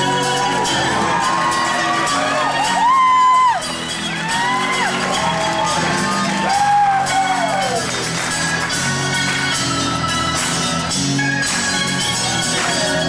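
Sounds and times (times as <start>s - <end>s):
acoustic rock band playing: 0.0s - 13.0s.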